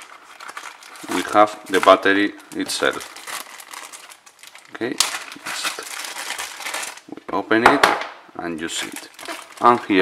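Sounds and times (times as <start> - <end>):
plastic bag crinkling: 0.0 - 7.1, 8.6 - 10.0.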